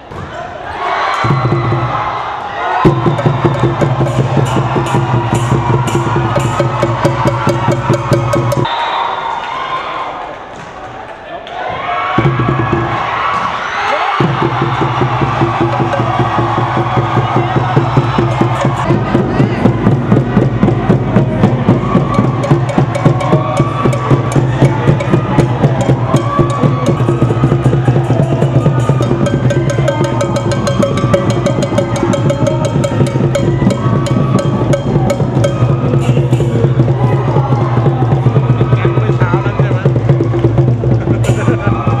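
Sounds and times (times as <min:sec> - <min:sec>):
crowd clapping and cheering: 0:00.7 - 0:42.0
music with fast percussion beat: 0:01.2 - 0:02.1, 0:02.8 - 0:08.7, 0:12.2 - 0:13.0, 0:14.2 - 0:42.0.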